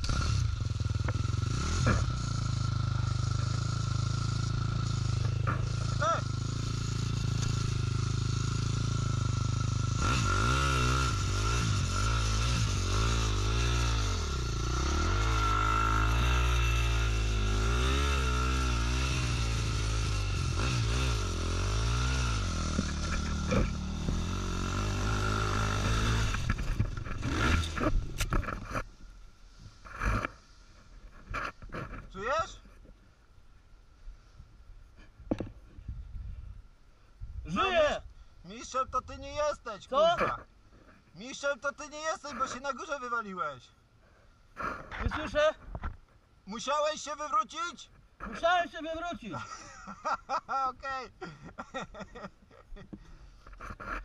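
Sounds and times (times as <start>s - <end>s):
dirt bike engine revving: 0.0s - 28.9s.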